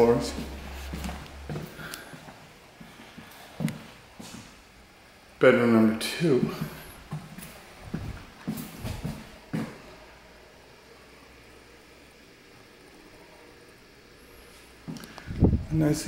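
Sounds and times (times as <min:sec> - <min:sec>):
footsteps on a hard floor: 0:00.0 - 0:04.6, 0:06.4 - 0:09.9.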